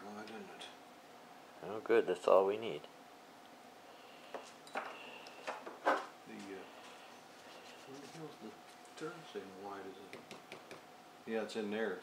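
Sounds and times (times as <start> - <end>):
low background hiss: 0.0 - 12.0.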